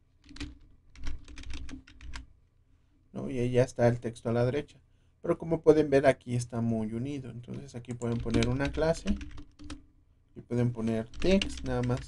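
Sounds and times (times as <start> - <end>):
computer keyboard typing: 0.2 - 2.3, 7.5 - 9.8, 10.8 - 12.0.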